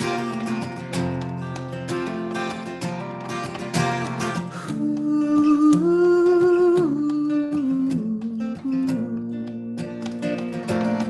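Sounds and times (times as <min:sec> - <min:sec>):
strummed acoustic guitar: 0:00.0 - 0:11.0
man singing wordless melody: 0:04.7 - 0:09.5.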